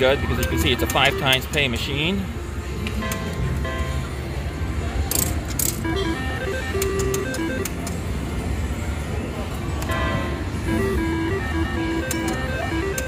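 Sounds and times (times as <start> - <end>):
slot machine chimes and jingles: 0.0 - 1.6, 5.8 - 7.8, 9.9 - 13.0.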